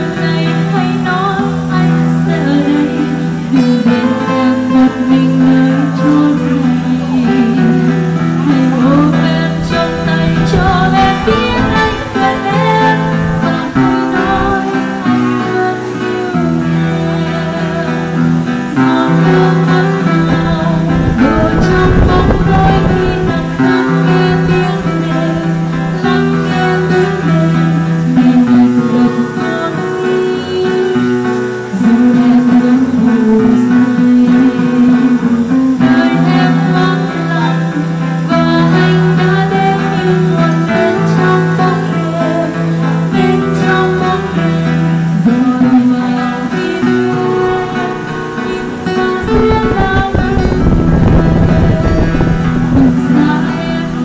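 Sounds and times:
acoustic guitars playing: 0.0 - 54.0
woman singing into a microphone: 0.0 - 54.0.

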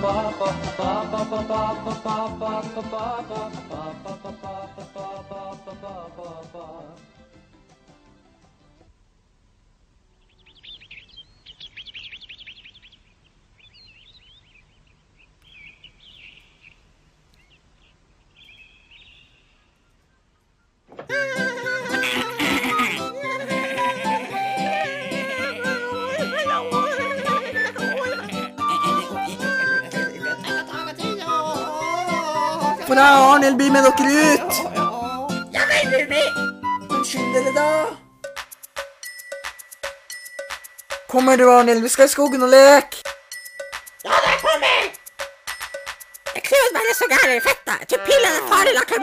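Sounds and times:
faint bird chirps: 10.1 - 20.8
cartoon background music: 21.1 - 49.0.

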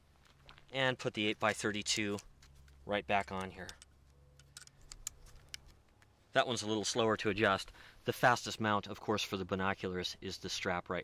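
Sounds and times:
small clicks and ticks: 1.5 - 6.1.

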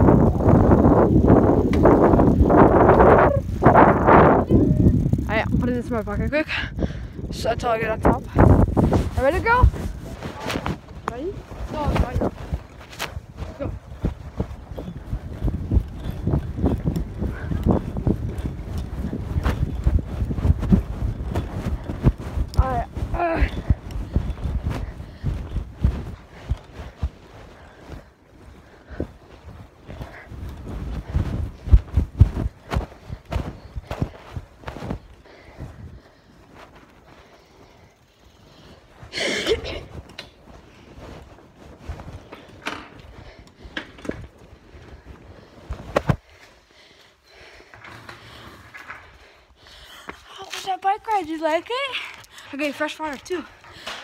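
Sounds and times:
fabric rubbing on phone microphone: 8.5 - 14.3.

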